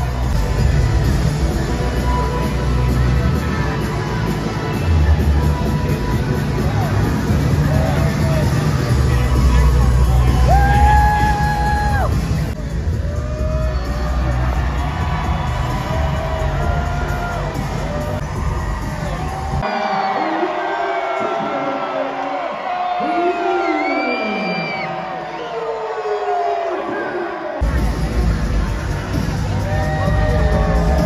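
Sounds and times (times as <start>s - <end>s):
crowd cheering and whooping: 0.0s - 31.0s
entrance music over loudspeakers: 0.0s - 31.0s.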